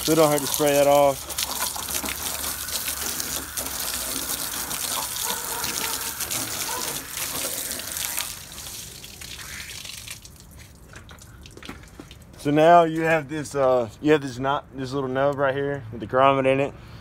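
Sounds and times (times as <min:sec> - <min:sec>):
hose water spraying on metal: 0:00.0 - 0:10.7.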